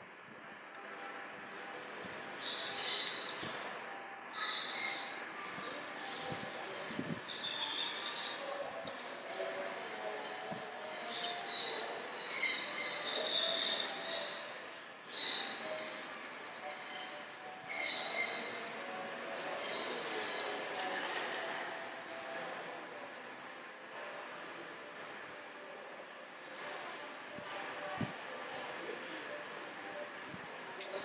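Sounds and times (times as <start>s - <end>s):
faint voices murmuring: 0.0s - 31.0s.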